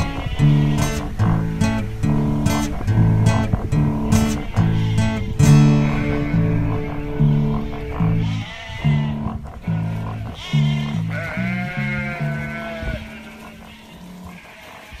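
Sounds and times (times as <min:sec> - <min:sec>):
guitar and bass song: 0:00.0 - 0:13.0
sheep bleating: 0:00.0 - 0:15.0.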